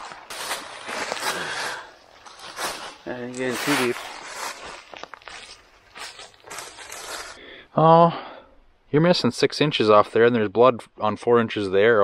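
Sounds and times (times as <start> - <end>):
footsteps in dry leaves: 0.0 - 7.4.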